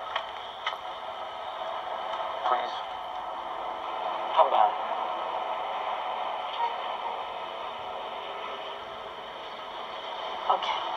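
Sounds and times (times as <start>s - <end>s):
steady background hiss: 0.0s - 10.9s.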